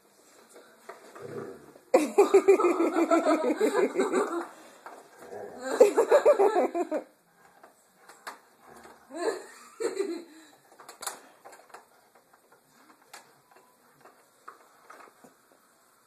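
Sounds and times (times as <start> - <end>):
person laughing softly: 5.6 - 7.1
faint clicks and taps: 7.4 - 9.0, 10.7 - 15.7.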